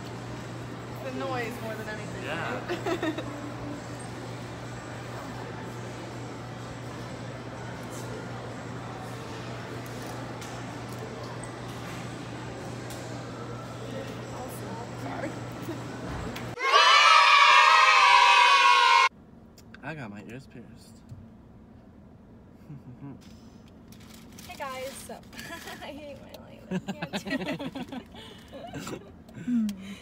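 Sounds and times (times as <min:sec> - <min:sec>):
low room hum: 0:00.0 - 0:30.0.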